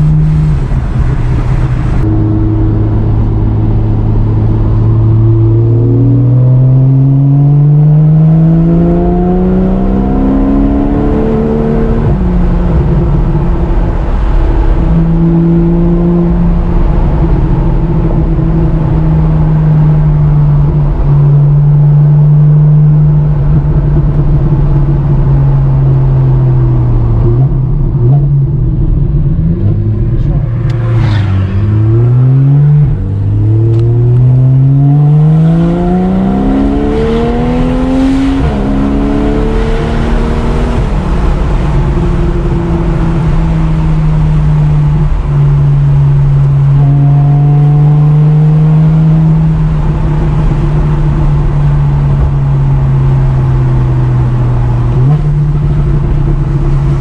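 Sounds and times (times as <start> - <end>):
car engine accelerating: 0.0 - 57.0.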